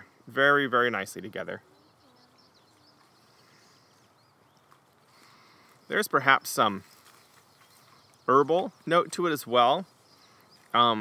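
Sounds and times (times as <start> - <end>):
distant birds chirping: 0.0 - 11.0.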